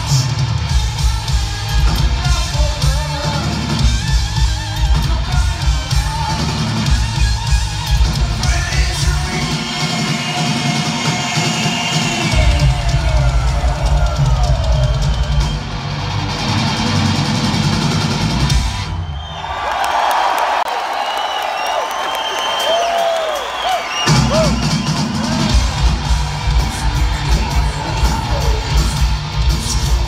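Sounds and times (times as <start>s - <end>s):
heavy metal band playing live: 0.0s - 18.9s, 24.0s - 30.0s
crowd cheering and whistling: 0.0s - 30.0s.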